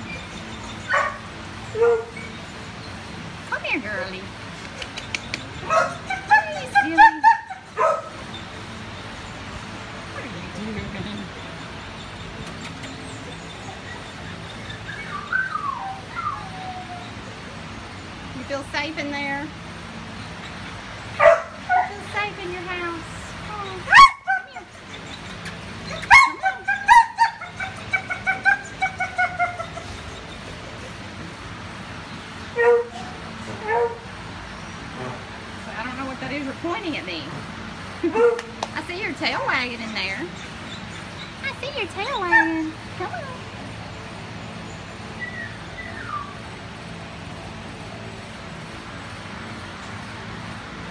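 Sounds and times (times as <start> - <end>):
dog whining: 5.6 - 8.5, 12.6 - 17.3, 23.6 - 31.0, 45.2 - 46.4.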